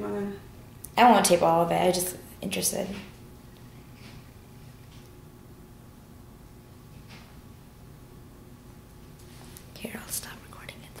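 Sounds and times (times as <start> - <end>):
low room hum: 0.0 - 11.0
person whispering: 9.8 - 11.0.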